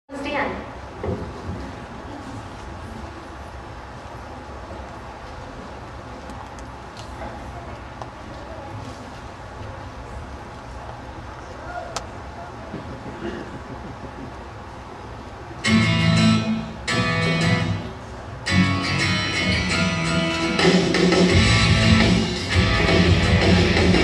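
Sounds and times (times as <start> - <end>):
children and adults chattering: 7.1 - 13.6.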